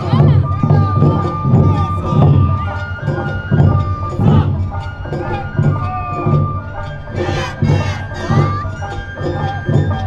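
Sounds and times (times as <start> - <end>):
dancers shouting calls: 0.0 - 9.6
big drums beating: 0.0 - 10.0
high melodic line: 0.0 - 10.0.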